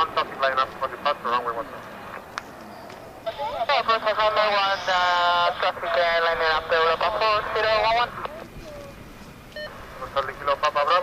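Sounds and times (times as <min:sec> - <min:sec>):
man speaking over radio: 0:00.0 - 0:01.8, 0:03.3 - 0:08.4, 0:09.9 - 0:11.0
faint radio hiss: 0:00.0 - 0:11.0
radio click: 0:10.1 - 0:10.5.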